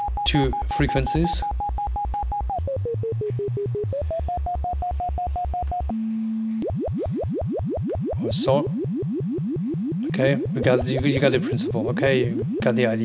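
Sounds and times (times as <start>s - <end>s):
pulsing synthesizer oscillator: 0.0s - 13.0s.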